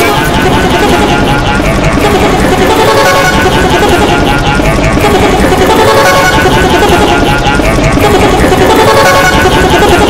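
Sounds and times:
overlapping cartoon soundtracks: 0.0 - 10.0.

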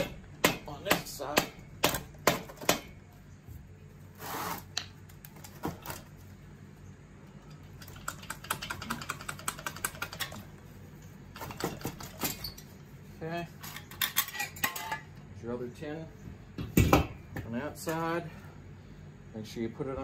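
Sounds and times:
metal parts knocking and clinking: 13.6 - 15.2.

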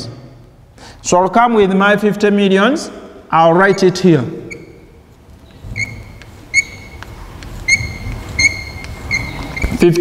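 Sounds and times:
chalk squeaking on a blackboard: 3.6 - 10.0.

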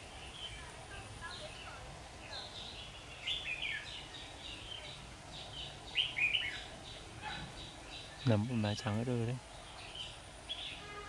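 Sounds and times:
birds singing warbled phrases: 0.0 - 11.0.

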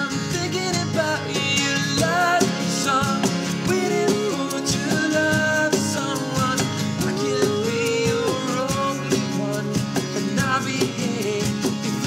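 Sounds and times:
acoustic guitars strummed: 0.0 - 12.0
cajon beat: 0.0 - 12.0.

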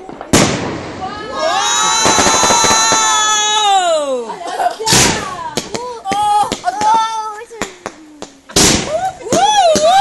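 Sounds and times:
fireworks cracking and banging: 0.0 - 10.0
firework whistles: 1.6 - 3.6.

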